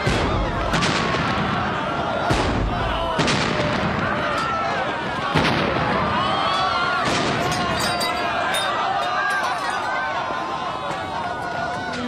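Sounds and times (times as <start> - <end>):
loud bangs: 0.0 - 8.4
many overlapping voices: 0.0 - 12.0.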